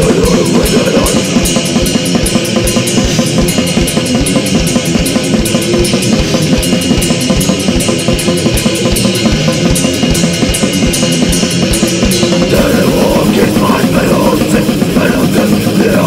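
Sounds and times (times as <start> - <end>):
distorted punk band: 0.0 - 16.0
fast drum beat: 0.0 - 16.0.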